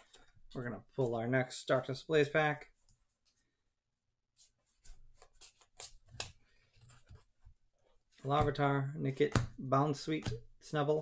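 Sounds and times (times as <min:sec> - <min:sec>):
trading cards flicking and rustling: 0:04.8 - 0:07.3.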